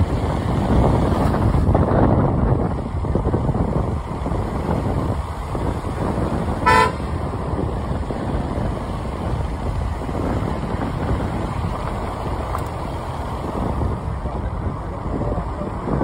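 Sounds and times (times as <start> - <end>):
wind and road noise: 0.0 - 16.0
vehicle horn toot: 6.6 - 7.2.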